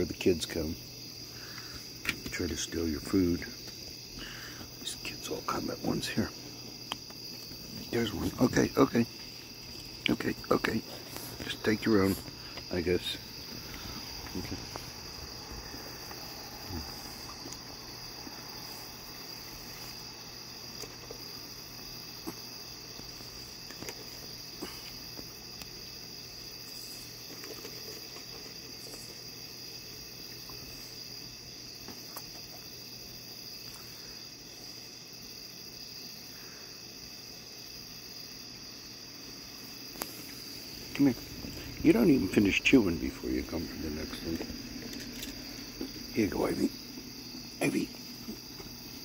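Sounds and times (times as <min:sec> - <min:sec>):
crickets chirping: 0:00.0 - 0:49.0
animals crunching dry food: 0:09.0 - 0:19.5, 0:20.7 - 0:25.8, 0:26.4 - 0:29.4, 0:39.9 - 0:47.4.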